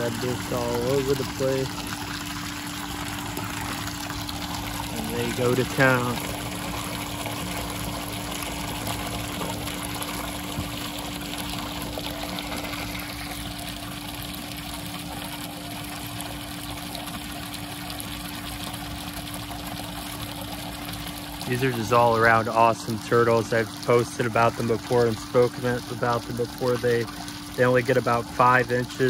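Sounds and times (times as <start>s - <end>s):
water pump humming: 0.0s - 29.0s
water splashing and trickling: 0.0s - 29.0s.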